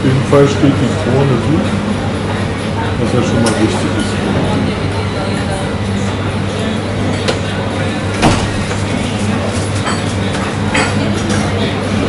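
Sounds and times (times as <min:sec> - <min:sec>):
bar room hum: 0:00.0 - 0:12.0.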